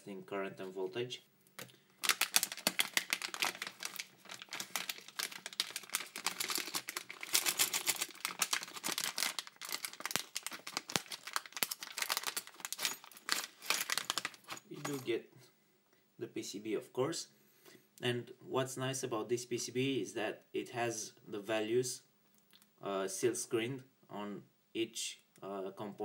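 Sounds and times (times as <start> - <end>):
plastic bag crinkling: 1.9 - 15.1.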